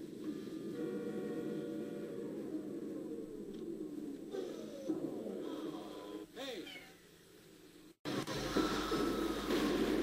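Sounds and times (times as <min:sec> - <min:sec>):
faint film soundtrack: 0:00.0 - 0:10.0.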